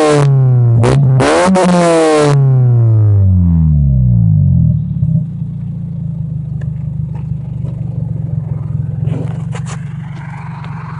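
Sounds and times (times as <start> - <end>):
car engine revving down to idle: 0.0 - 10.9.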